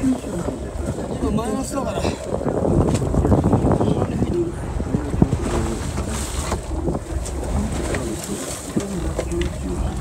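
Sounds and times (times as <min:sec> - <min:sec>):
boat engine rumble: 0:00.0 - 0:10.0
wind on microphone: 0:00.0 - 0:10.0.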